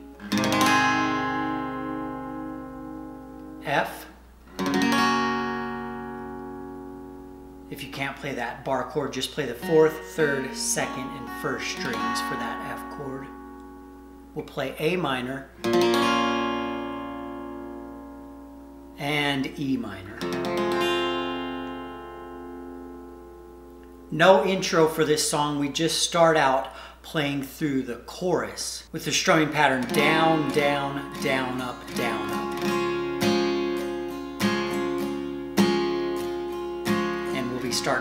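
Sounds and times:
acoustic guitar chord ringing: 0.0 - 25.8, 29.3 - 38.0.

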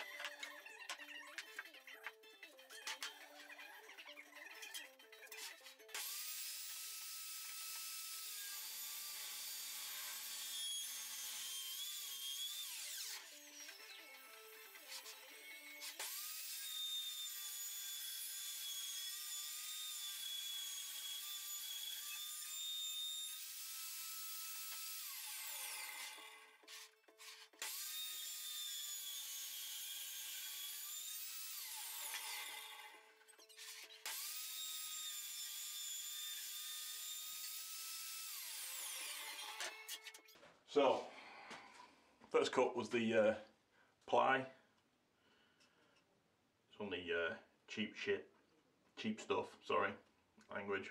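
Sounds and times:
table saw whining: 5.6 - 40.3
saw blade ripping wood board: 24.1 - 29.0.

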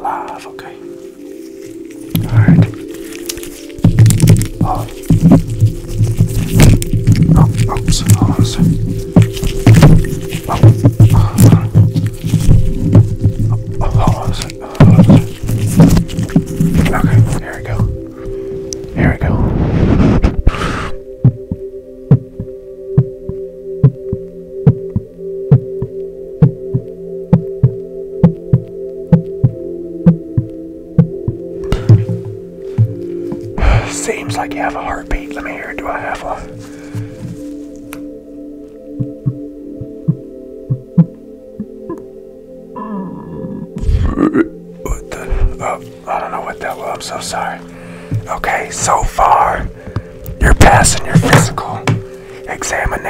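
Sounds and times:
soft background music: 0.0 - 53.0
stethoscope scraping microphone: 1.8 - 21.0
heartbeat thumps: 2.1 - 2.8, 3.8 - 34.4, 39.0 - 42.0, 48.1 - 52.2
stethoscope thumps on microphone: 49.9 - 52.1.

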